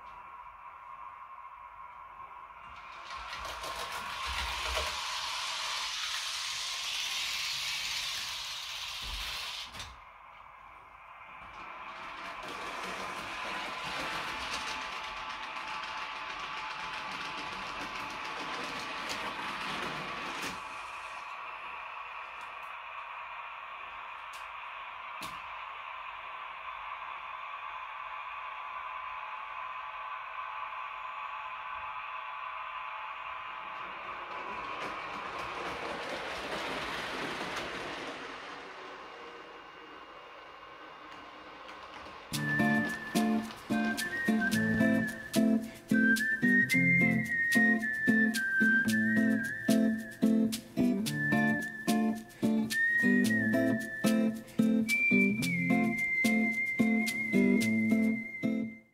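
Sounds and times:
model train motor whine: 0.0s - 58.8s
wheels rolling on track: 2.3s - 58.8s.

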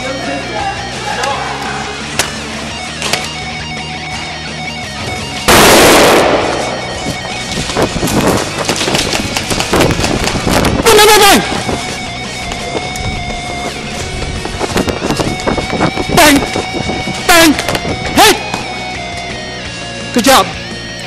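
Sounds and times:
guitar-driven background music: 0.0s - 21.0s
airsoft guns firing: 5.5s - 7.6s.

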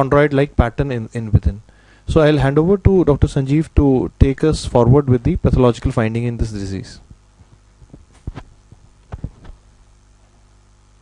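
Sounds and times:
low electrical hum: 0.0s - 11.0s
lapel microphone handling thumps: 1.3s - 1.6s, 4.3s - 9.7s.

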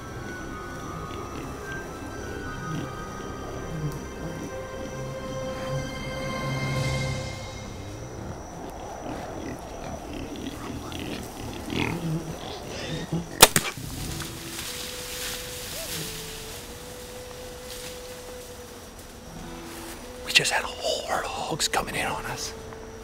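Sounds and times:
hogs grunting: 0.0s - 14.7s
bow release snap: 13.4s - 14.7s.

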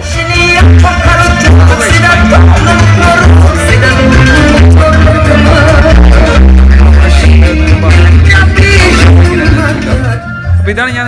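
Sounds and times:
live band music: 0.0s - 11.0s.

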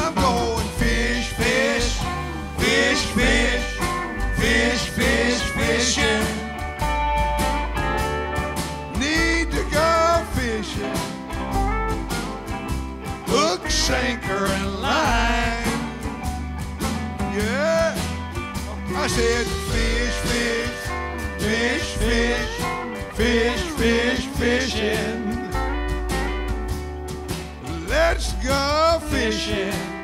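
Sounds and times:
electric guitar lines: 0.0s - 30.0s
live blues band playing: 0.0s - 30.0s.

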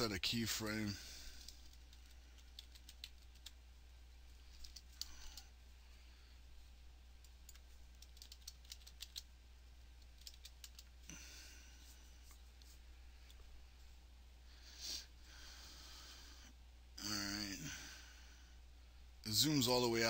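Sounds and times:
low steady hum: 0.0s - 20.0s
keyboard typing: 1.4s - 3.6s, 4.5s - 5.5s, 7.2s - 9.3s, 10.0s - 10.9s.

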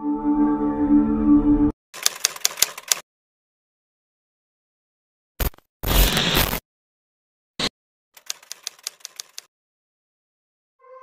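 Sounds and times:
typewriter keystroke clicks: 2.0s - 3.0s, 8.2s - 9.5s.

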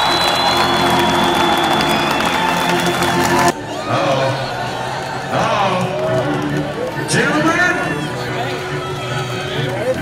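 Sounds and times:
high held whistle: 0.0s - 2.8s
crowd cheering and applauding: 0.0s - 10.0s
music: 0.0s - 10.0s.

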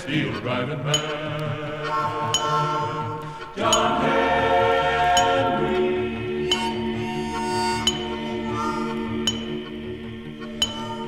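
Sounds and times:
choir holding sustained chord: 0.0s - 11.0s
ringing metallic clink: 10.6s - 11.0s.

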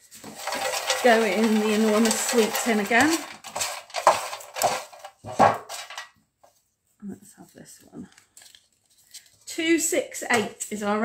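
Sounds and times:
paper rustling in metal tin: 0.0s - 6.2s.

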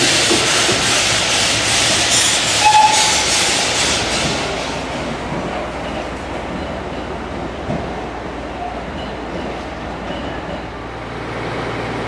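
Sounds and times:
train engine rumble: 0.0s - 12.0s.

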